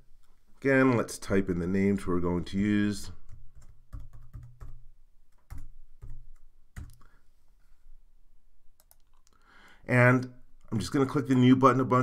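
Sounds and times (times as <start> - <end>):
typing on computer keyboard: 3.2 - 7.1.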